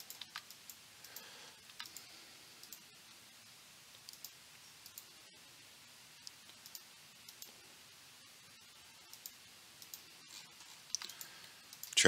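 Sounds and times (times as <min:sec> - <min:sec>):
mouse and keyboard clicks: 0:09.1 - 0:12.0.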